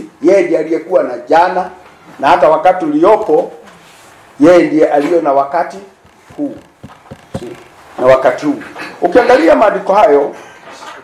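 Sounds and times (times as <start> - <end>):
man preaching: 4.4 - 6.8
faint taps: 6.0 - 7.8.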